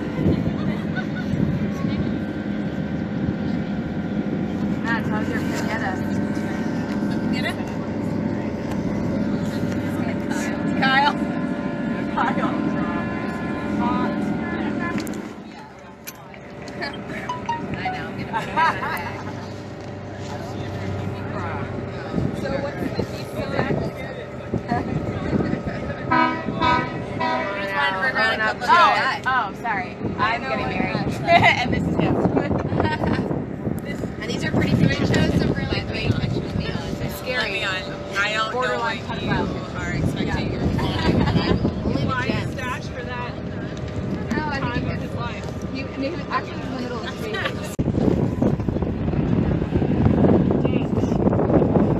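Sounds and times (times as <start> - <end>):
wind on microphone: 0.0 - 10.8, 20.9 - 27.5, 29.9 - 37.3, 39.0 - 46.7, 47.5 - 51.9
boat engine drone: 0.0 - 51.9
indistinct passenger chatter: 0.0 - 51.9
multi-tone horn blasts: 26.1 - 27.9.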